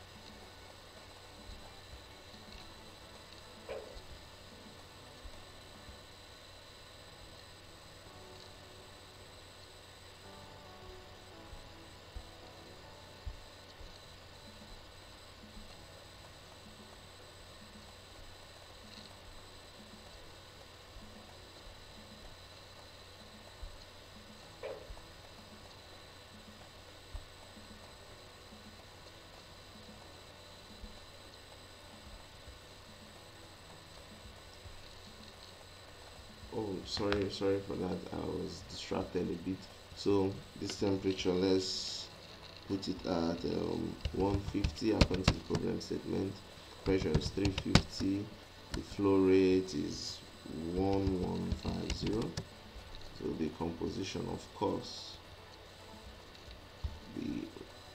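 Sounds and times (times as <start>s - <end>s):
low electrical hum: 0.0s - 57.9s
steady hiss: 0.0s - 57.9s.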